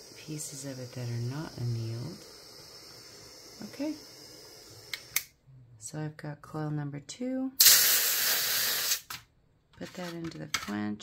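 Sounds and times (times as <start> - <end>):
hot wire hissing in water: 0.0 - 5.3, 7.6 - 9.1.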